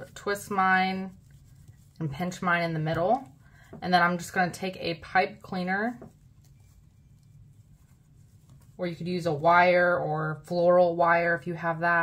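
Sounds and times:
faint rustling of ribbon: 0.0 - 9.9
low room hum: 0.0 - 12.0.

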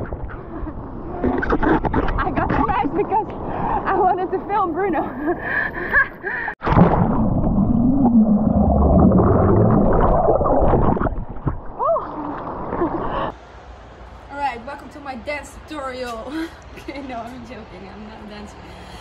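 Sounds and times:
woman's voice: 2.2 - 3.3, 3.9 - 5.2, 14.3 - 19.0.

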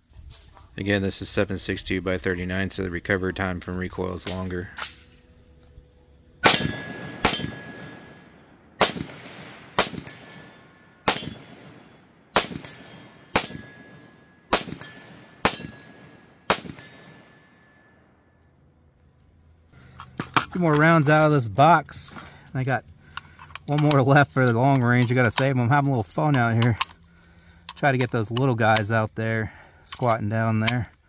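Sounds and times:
steel plate ringing ping: 6.4 - 8.2, 12.6 - 18.0
rifle shots: 6.4 - 17.4.

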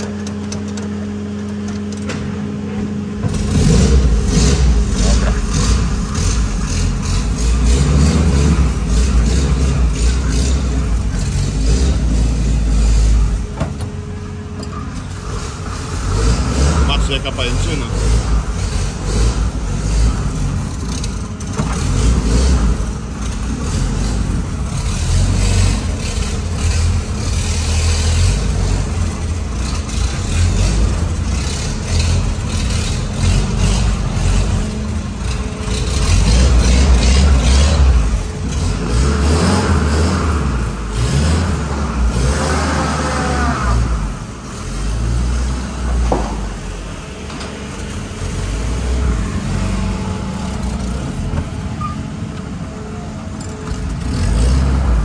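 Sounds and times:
jeep engine revving unevenly: 0.0 - 55.0.

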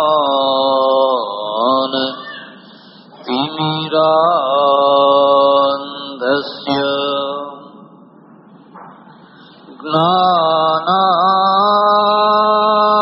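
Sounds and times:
man chanting: 0.0 - 2.6, 3.2 - 8.0, 9.6 - 13.0.

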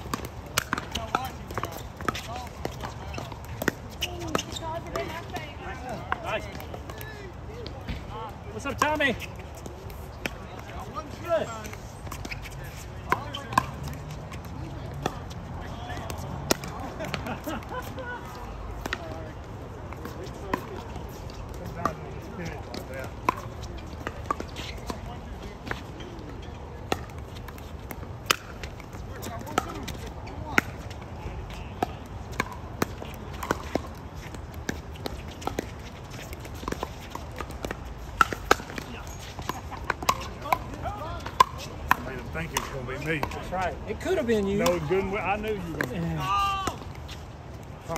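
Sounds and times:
pickleball paddles striking ball: 0.0 - 6.7, 13.0 - 14.1, 31.8 - 43.7.

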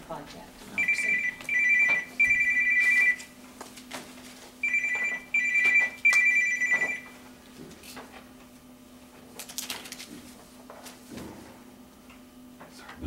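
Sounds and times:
electronic telephone ringer trilling: 0.8 - 3.2, 4.6 - 7.1.

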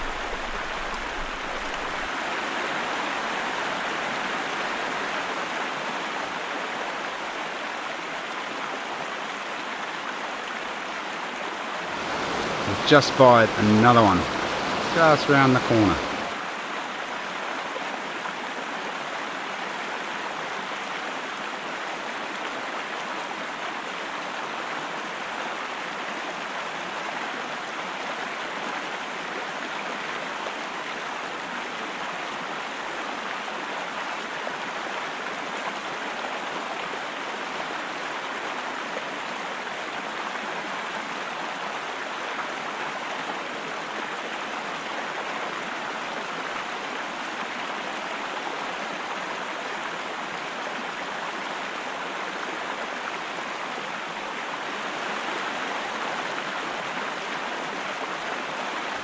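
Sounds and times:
river rushing over stones: 0.0 - 59.0.

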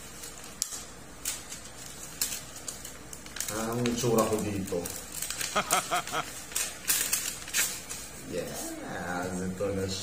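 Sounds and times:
paper envelope rustling: 0.0 - 8.6.

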